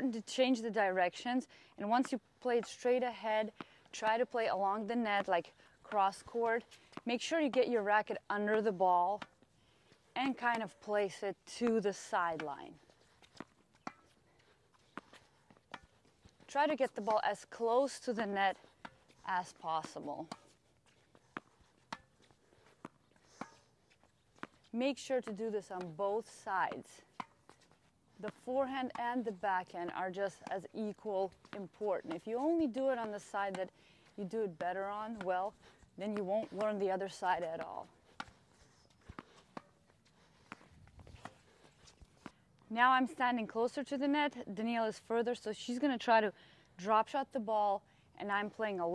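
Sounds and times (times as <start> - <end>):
tennis ball bouncing on court: 3.4 - 9.4, 10.2 - 14.2, 14.9 - 20.6, 21.2 - 39.8
tennis ball struck with racket: 13.4 - 14.1, 17.9 - 20.5, 21.3 - 22.2, 22.8 - 23.6, 24.4 - 27.5, 34.5 - 38.4.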